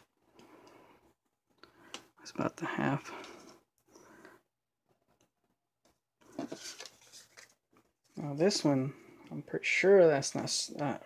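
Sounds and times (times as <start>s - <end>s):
paper card rustling and scraping: 6.3s - 7.9s.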